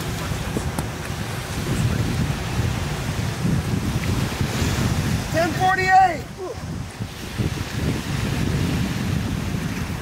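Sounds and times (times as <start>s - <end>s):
breaking surf: 0.0s - 10.0s
wind buffeting microphone: 0.0s - 10.0s
person shouting: 5.4s - 6.7s.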